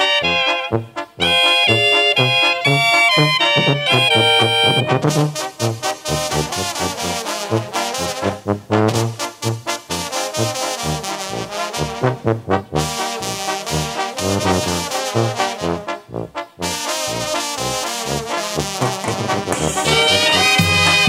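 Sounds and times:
brass band music: 0.0 - 21.0.

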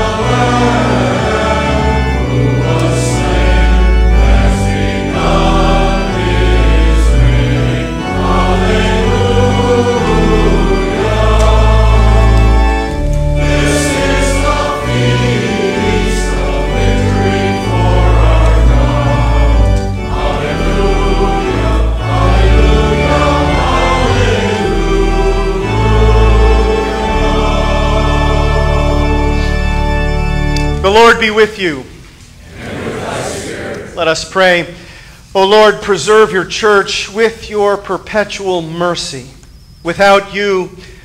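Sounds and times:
congregation singing a hymn: 0.0 - 40.8
organ chords: 0.0 - 41.0.

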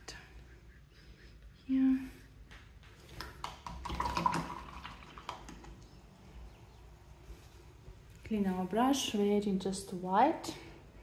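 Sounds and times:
small water splashes: 3.6 - 5.8.

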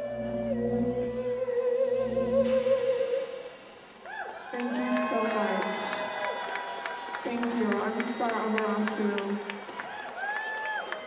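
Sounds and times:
singer holding a note: 0.0 - 6.0
audience whooping and cheering: 3.2 - 11.0
scattered clapping: 4.5 - 11.0.

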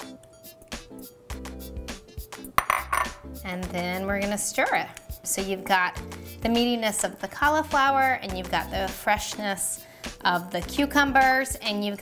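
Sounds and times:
background music with beat: 0.0 - 6.7, 7.3 - 11.6.

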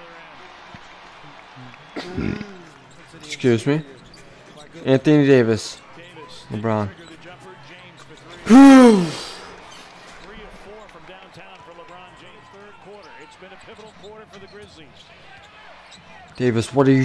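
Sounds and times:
arena crowd sound: 0.0 - 17.0
basketball commentary: 0.0 - 17.0
man exclaiming loudly: 8.5 - 9.4.

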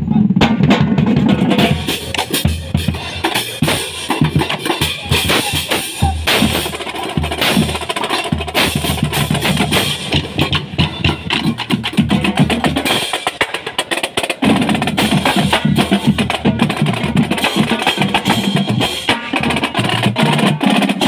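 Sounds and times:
marching drumline playing: 0.0 - 21.0.

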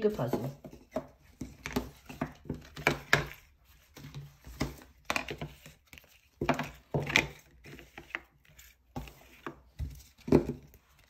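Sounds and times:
books tapping on a table: 0.1 - 5.8, 9.0 - 10.8.

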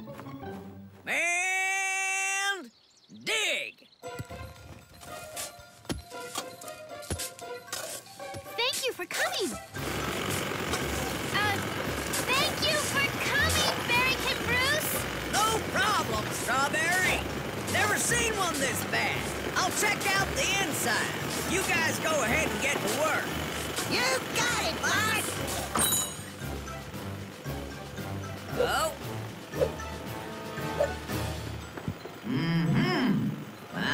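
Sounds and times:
background music: 0.0 - 1.4, 3.9 - 33.9
machine-like rumble: 9.8 - 33.9.

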